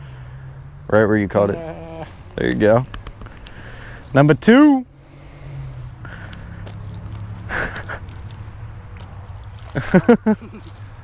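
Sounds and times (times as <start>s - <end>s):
low rumble and rustling: 0.0s - 11.0s.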